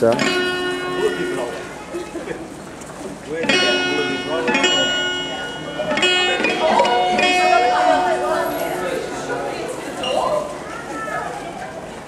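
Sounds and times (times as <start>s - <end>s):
guitar chords strummed: 0.0s - 2.0s, 3.3s - 9.9s.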